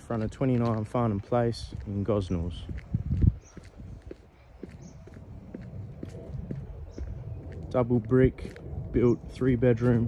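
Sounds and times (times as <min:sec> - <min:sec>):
footsteps on brick path: 0:00.0 - 0:10.0.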